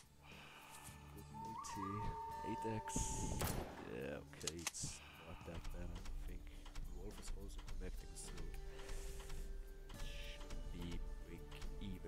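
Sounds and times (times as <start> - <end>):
short clicks: 4.4 - 4.9.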